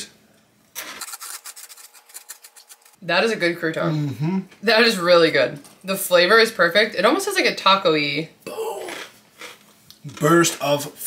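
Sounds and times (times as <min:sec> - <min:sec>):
croutons being chewed: 0:00.8 - 0:03.0.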